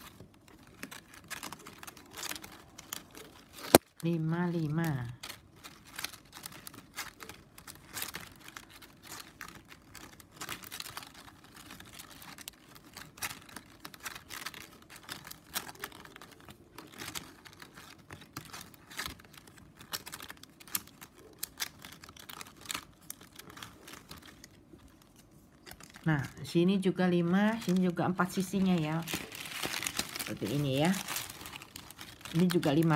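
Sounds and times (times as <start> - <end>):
plastic strips clicking and rustling: 0.0 - 32.9.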